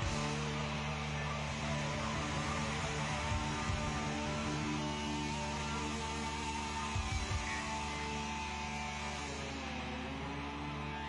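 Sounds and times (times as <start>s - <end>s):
distorted electric guitar and bass chord: 0.0s - 11.0s.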